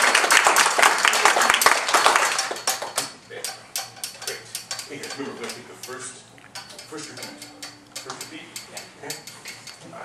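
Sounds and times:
audience applause: 0:00.0 - 0:02.9.

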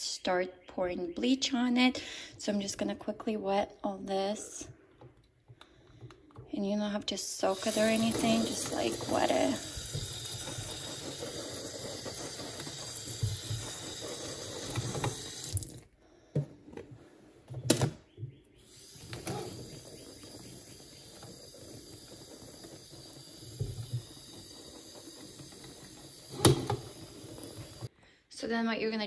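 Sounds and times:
tap water splashing in sink: 0:07.4 - 0:15.8.

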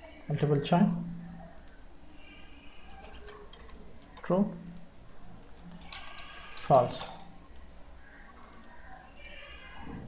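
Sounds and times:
man speaking: 0:06.6 - 0:07.3.

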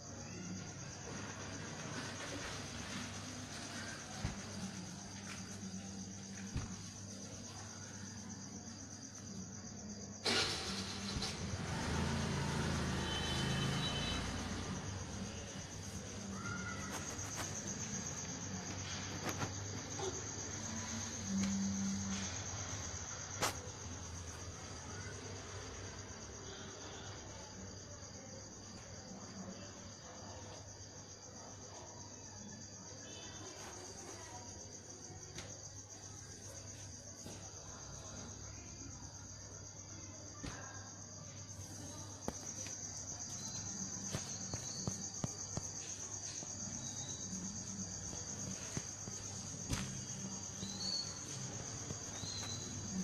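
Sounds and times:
crickets chirring: 0:00.0 - 0:53.0.

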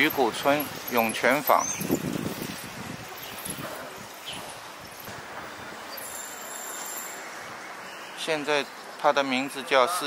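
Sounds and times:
low street hiss: 0:00.0 - 0:10.0.

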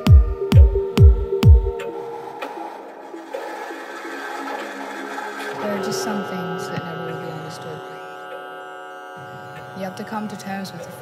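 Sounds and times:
electronic bassline: 0:00.0 - 0:06.1
held synth tones: 0:00.0 - 0:11.0
noisy electronic texture: 0:00.0 - 0:11.0.

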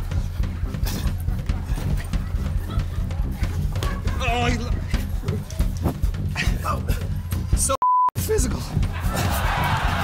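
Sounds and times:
censor bleep: 0:07.8 - 0:08.2.

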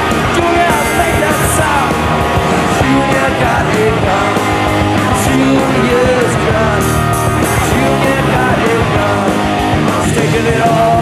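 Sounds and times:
bass: 0:00.0 - 0:11.0
drums: 0:00.0 - 0:11.0
electric guitars: 0:00.0 - 0:11.0
person singing: 0:00.1 - 0:11.0.

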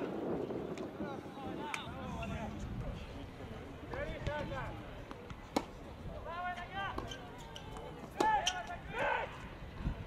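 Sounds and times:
players shouting calls: 0:06.2 - 0:09.6.

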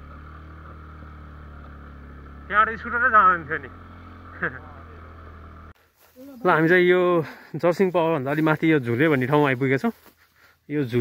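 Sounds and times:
scooter engine running: 0:00.0 - 0:05.8
man's voice: 0:10.7 - 0:11.0.

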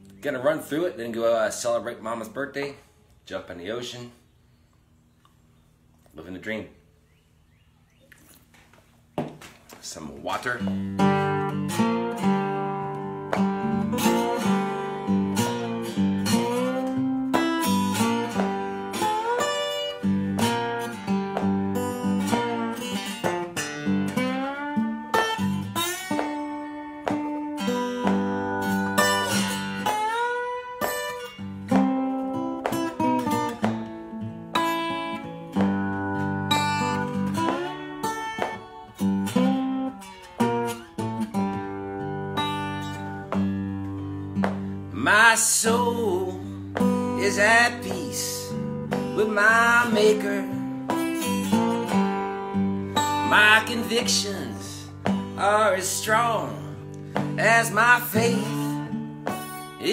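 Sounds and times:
slide guitar blues playing: 0:10.3 - 0:59.9.

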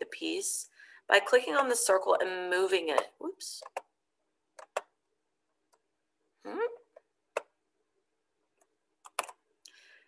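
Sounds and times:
computer mouse clicking: 0:03.0 - 0:03.9, 0:04.6 - 0:04.9, 0:07.0 - 0:07.5, 0:08.6 - 0:09.4.

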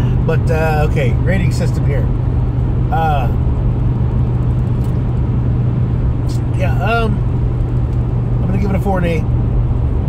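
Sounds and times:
car interior engine and road noise: 0:00.0 - 0:10.0.

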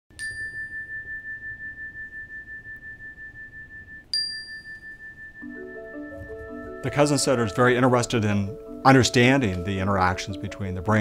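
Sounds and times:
meditation chime ringing: 0:00.1 - 0:11.0.

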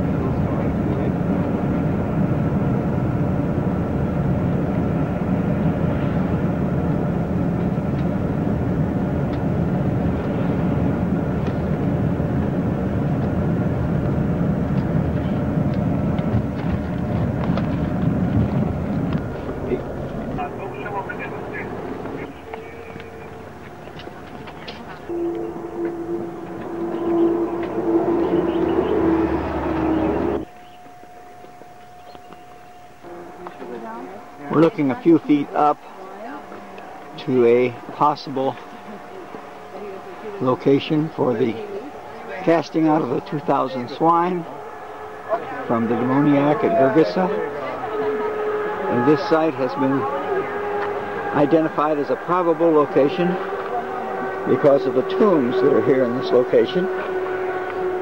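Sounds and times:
vehicle engine and road noise: 0:00.0 - 0:58.0.

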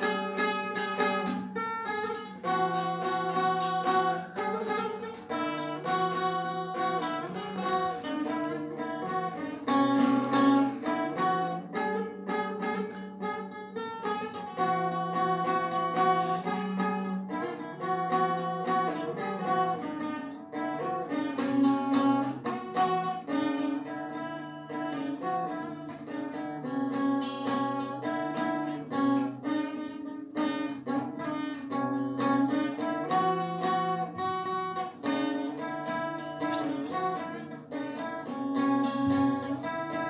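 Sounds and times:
plucked lute melody: 0:00.0 - 0:40.0.

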